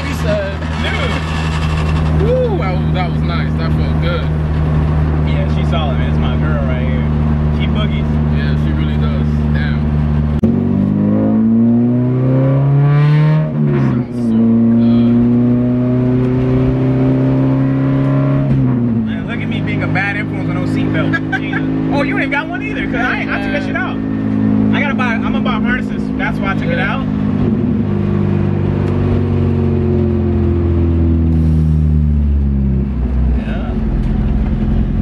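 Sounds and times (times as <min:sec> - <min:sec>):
car engine revving: 0:00.0 - 0:35.0.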